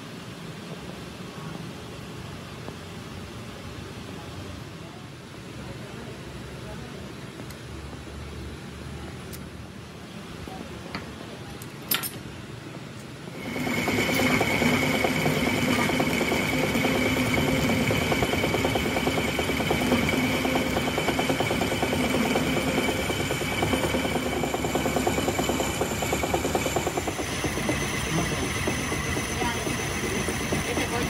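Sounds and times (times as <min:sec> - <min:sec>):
metal lathe whining: 0:13.4 - 0:31.0
tool bit cutting steel: 0:13.4 - 0:31.0.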